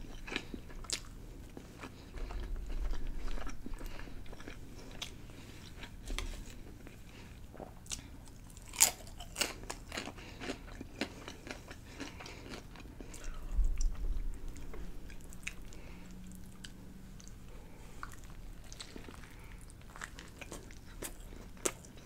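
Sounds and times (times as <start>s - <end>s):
potato chip crunching: 8.0s - 13.4s.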